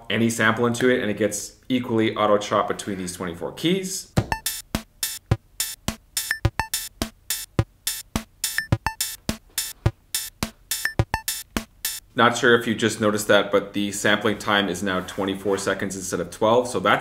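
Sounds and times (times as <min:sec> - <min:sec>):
electronic drum beat: 0:04.2 - 0:12.1.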